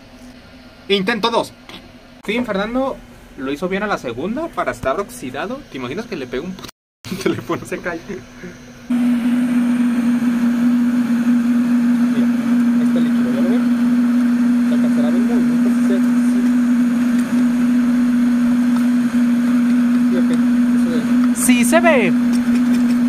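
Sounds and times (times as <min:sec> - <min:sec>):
electric blower motor hum: 0:08.8 - 0:23.0.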